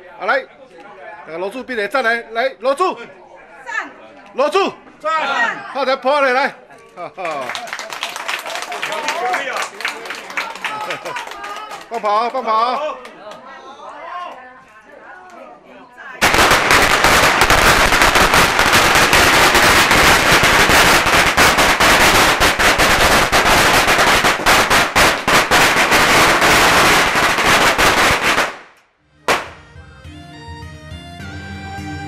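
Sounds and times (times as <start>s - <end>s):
firecrackers crackling: 16.2s - 29.6s
music: 29.0s - 32.0s.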